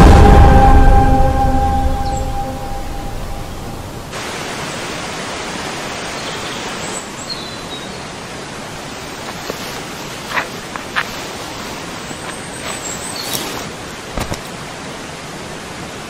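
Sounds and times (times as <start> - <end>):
music with long held notes: 0.0 - 4.1
small waterfall rushing: 3.6 - 16.0.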